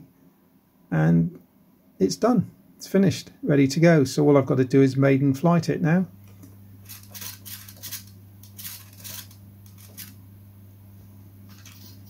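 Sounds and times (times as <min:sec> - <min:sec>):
low electrical hum: 0:00.0 - 0:12.0
clicks and scrapes of handling: 0:06.3 - 0:10.2, 0:11.5 - 0:12.0.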